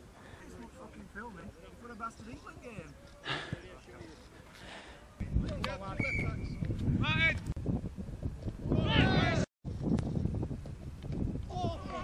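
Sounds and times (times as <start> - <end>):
wind on microphone: 5.2 - 12.0
men shouting: 8.8 - 9.4.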